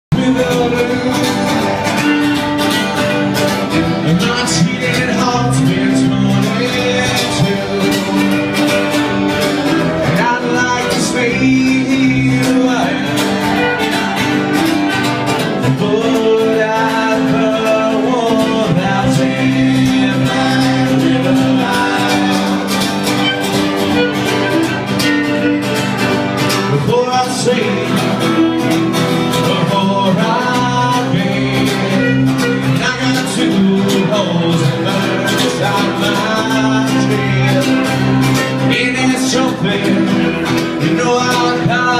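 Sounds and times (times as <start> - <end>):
strummed acoustic guitars: 0.1 - 41.9
fiddle: 0.2 - 15.8, 16.7 - 41.9.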